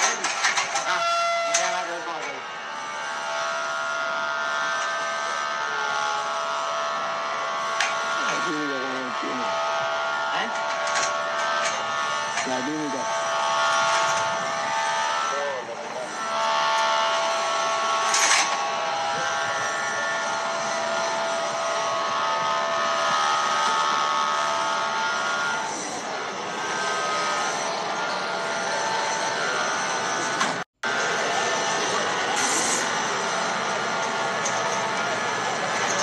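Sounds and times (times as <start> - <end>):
dense background noise: 0.0 - 36.0
indistinct voices: 6.8 - 9.6, 10.2 - 13.2.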